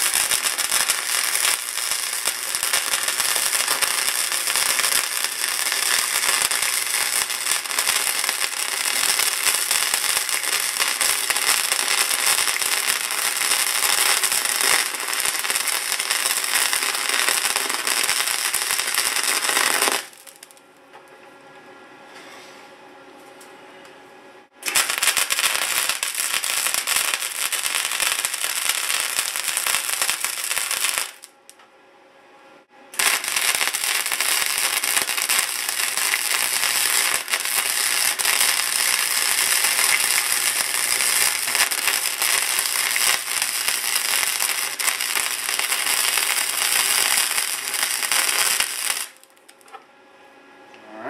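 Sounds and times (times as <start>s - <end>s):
arc welder crackling: 0.0s - 21.0s, 24.6s - 31.6s, 32.9s - 49.8s.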